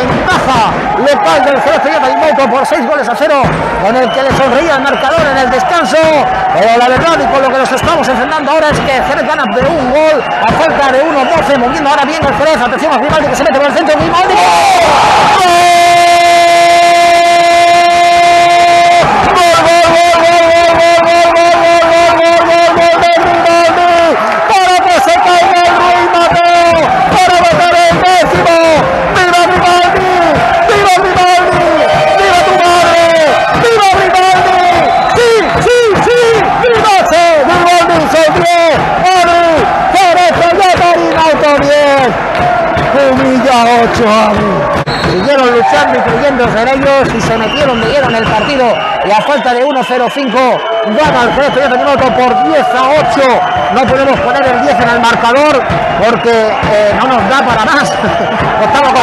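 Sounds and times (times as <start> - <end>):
commentator shouting: 0.0 - 59.0
crowd cheering: 0.0 - 59.0.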